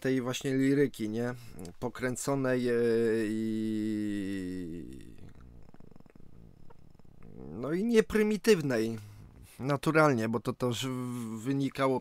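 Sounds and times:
man's drawn-out hesitation sound: 0.0 - 5.3, 7.3 - 12.0
faint clicks: 1.5 - 1.9, 4.3 - 7.6.

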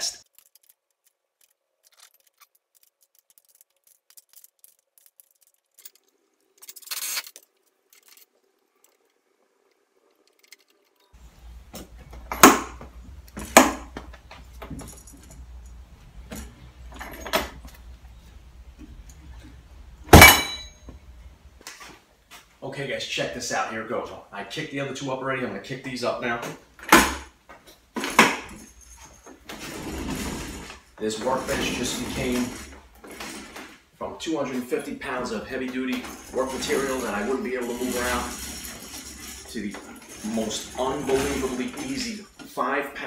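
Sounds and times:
metal hardware clinking: 20.1 - 21.0.

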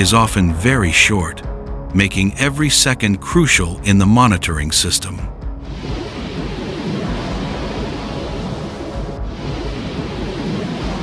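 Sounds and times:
faint background music: 0.0 - 11.0
deep rumble: 5.3 - 11.0
steady rushing noise: 5.4 - 11.0.

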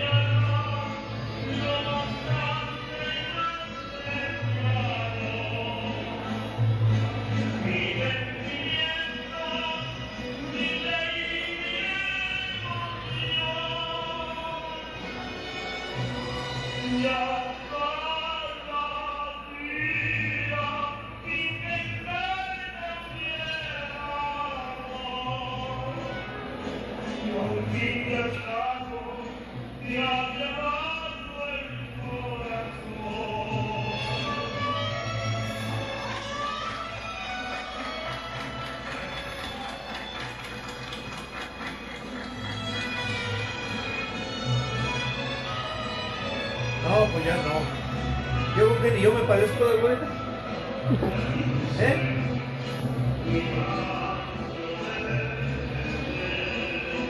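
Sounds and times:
mariachi music: 0.0 - 57.0.

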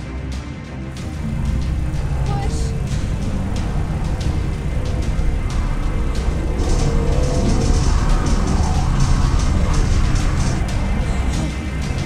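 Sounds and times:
film soundtrack music: 0.0 - 12.0
heavy low rumble: 0.2 - 12.0.

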